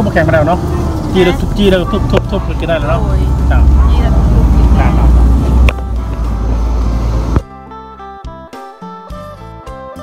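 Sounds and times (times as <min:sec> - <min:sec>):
low outdoor rumble: 0:00.0 - 0:07.5.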